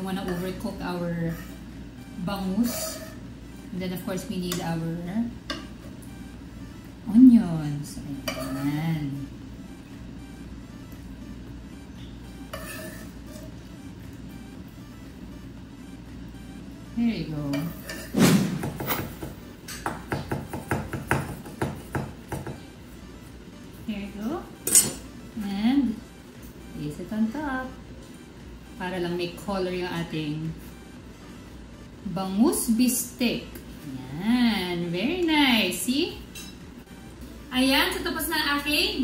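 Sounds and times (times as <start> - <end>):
knife chopping on cutting board: 18.2 - 22.6.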